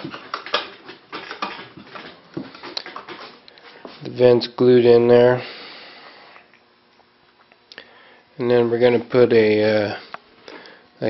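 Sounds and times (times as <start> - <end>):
handling clicks and knocks: 0.0 - 3.3.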